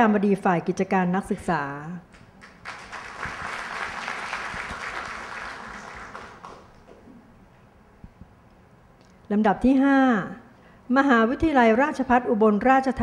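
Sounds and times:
audience applauding: 2.2s - 7.0s.

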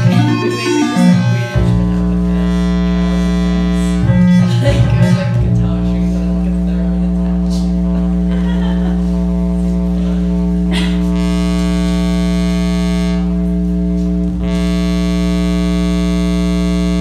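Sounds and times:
buzzy electronic theremin drone: 0.0s - 17.0s.

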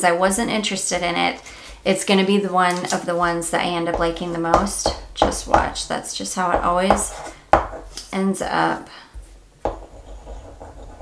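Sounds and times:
faint rubbing and scraping: 6.9s - 8.1s, 9.2s - 11.0s.

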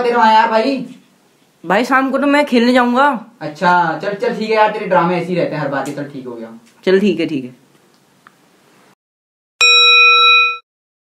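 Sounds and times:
bell-like ding: 9.6s - 10.6s.

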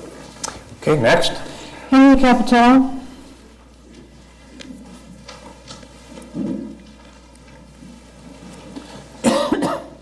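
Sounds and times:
person coughing: 9.2s - 10.0s.

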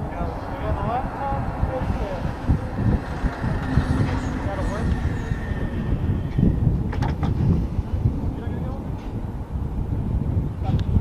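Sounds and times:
helicopter engines and rotors rumbling: 0.0s - 11.0s.

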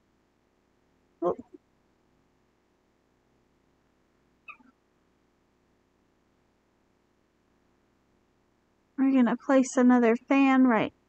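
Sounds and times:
pet animal chirp: 4.4s - 4.8s.

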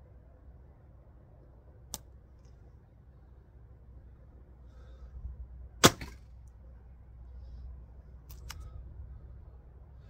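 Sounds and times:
arrow handling clicks: 8.2s - 8.7s.

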